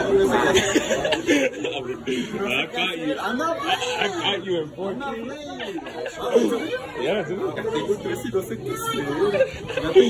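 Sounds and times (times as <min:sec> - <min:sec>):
young men chattering: 0:00.0 - 0:10.0.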